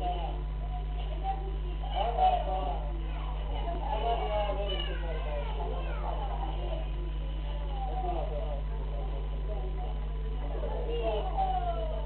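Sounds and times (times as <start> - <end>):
low electrical hum: 0.0 - 12.0
people talking at once: 0.0 - 12.0.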